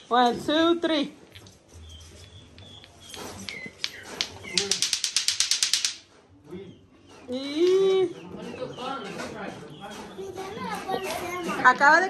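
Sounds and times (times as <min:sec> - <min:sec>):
clacker balls clacking: 0:02.6 - 0:06.2.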